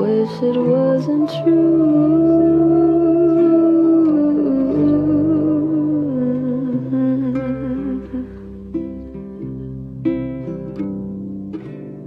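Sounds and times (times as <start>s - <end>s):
woman humming: 0.0s - 9.8s
soft musical accompaniment: 0.0s - 12.0s.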